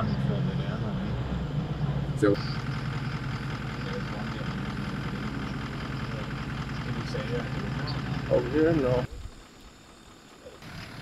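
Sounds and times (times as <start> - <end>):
vehicle engine low hum: 0.0 - 11.0.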